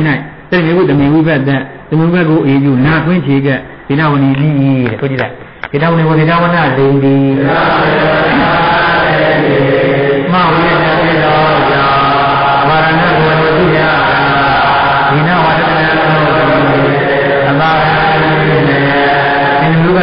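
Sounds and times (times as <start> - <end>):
man chanting: 0.0 - 20.0.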